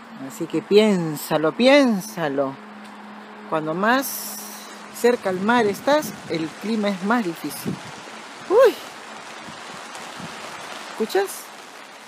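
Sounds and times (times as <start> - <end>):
rain falling: 0.0 - 12.0.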